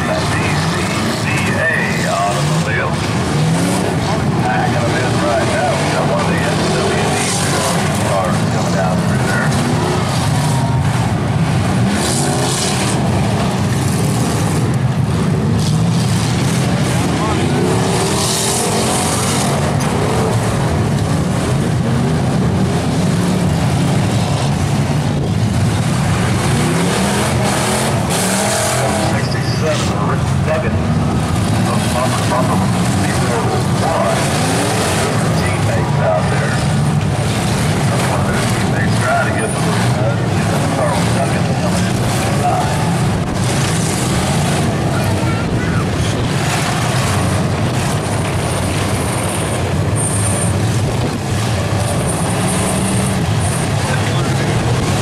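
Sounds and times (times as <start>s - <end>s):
car engines revving: 0.0s - 55.0s.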